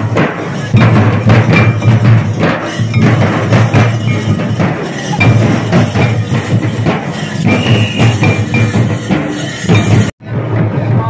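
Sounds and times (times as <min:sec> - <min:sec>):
metal hand cymbals clashing: 0:00.0 - 0:10.1
large drums beaten with sticks: 0:00.0 - 0:11.0.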